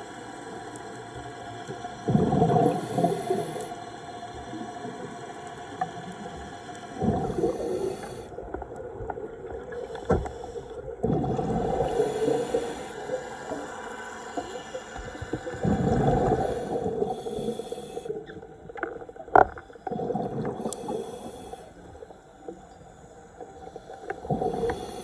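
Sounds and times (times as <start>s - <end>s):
underwater background: 0.0s - 25.0s
scuba regulator exhaust bubbles: 1.7s - 3.8s, 4.4s - 18.4s, 19.0s - 21.6s, 23.5s - 25.0s.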